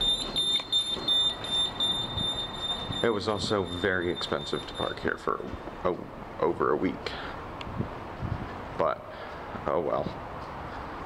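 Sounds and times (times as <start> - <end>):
high-pitched electronic tone: 0.0 - 5.1
rustling background noise: 7.4 - 11.0.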